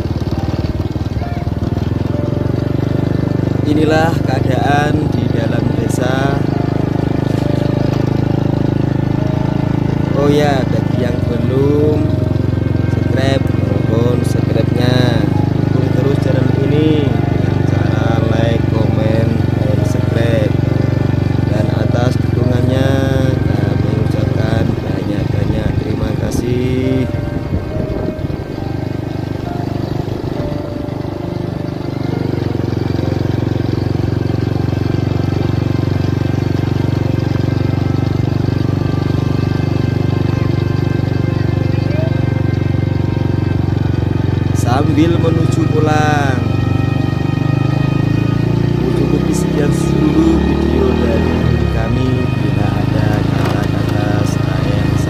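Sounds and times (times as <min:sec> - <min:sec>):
small motorcycle engine running: 0:00.0 - 0:55.0.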